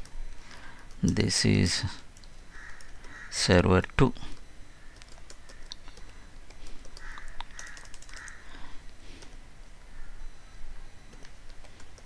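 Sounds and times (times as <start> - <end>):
computer keyboard typing: 2.2 - 3.2, 4.2 - 8.4, 11.1 - 12.0.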